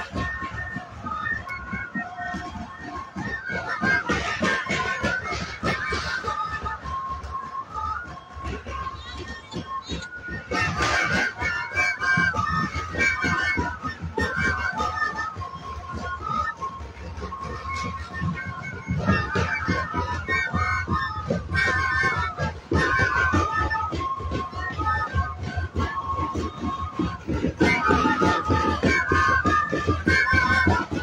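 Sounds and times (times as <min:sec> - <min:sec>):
steady drumbeats: 0:00.0 - 0:31.0
wind instrument melody: 0:00.0 - 0:31.0.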